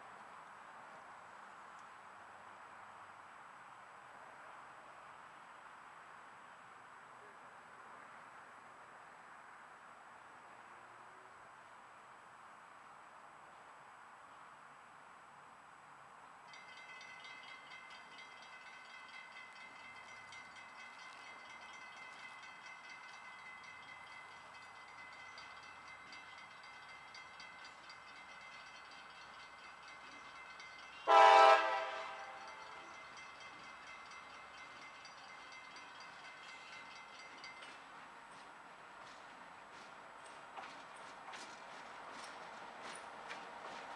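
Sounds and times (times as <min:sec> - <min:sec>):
locomotive air horn blast: 0:31.0 - 0:32.5.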